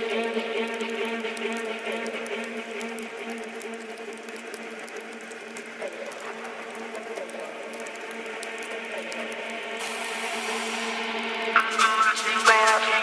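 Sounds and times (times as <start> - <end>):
hiss and crackle: 0.0 - 13.0.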